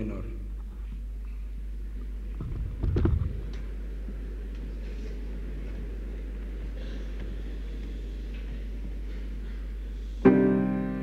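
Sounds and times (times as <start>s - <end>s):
steady low hum: 0.0s - 11.0s
knocks and thumps: 2.4s - 3.4s.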